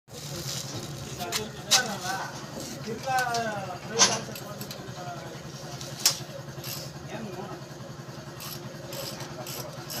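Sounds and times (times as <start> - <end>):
low hum of running engine: 0.1 - 10.0.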